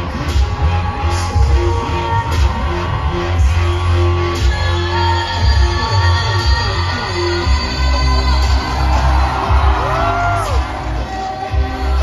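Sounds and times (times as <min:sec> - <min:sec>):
heavy bass beat: 0:00.0 - 0:12.0
live pop song through pa: 0:00.0 - 0:12.0.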